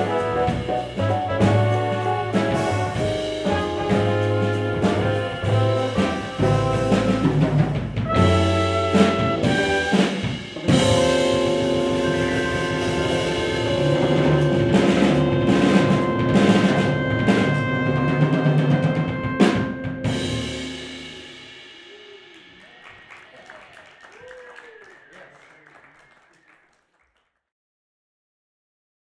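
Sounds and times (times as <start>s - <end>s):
jazz band holding final chord: 0.0s - 23.4s
drum and cymbal strikes: 20.0s - 22.8s.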